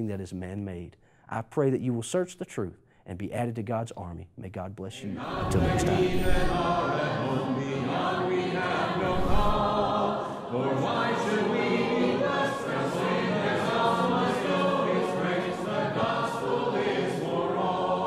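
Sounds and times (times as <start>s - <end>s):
choir singing a cappella: 5.0s - 18.0s.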